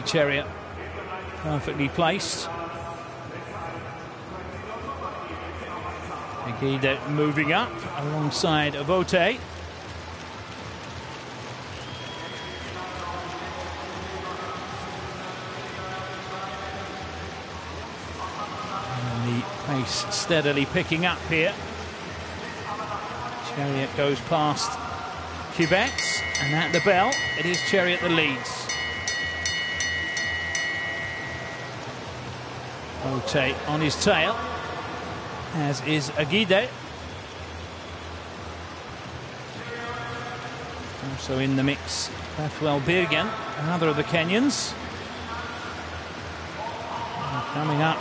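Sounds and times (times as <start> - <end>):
stadium crowd din: 9.7 - 41.0
bell ringing rapidly: 25.5 - 32.5.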